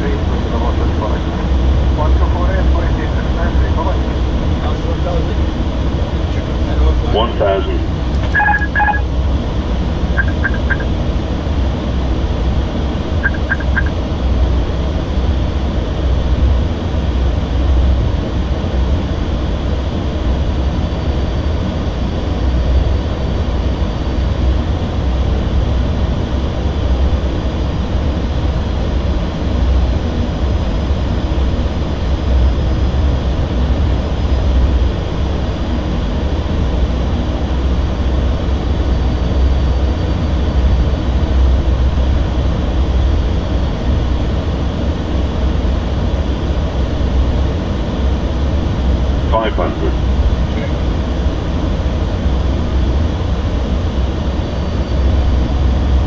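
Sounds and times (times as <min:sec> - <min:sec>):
airliner cockpit noise: 0:00.0 - 0:56.0
quick high cockpit beeps: 0:08.2 - 0:09.1, 0:10.2 - 0:10.9, 0:13.2 - 0:14.0.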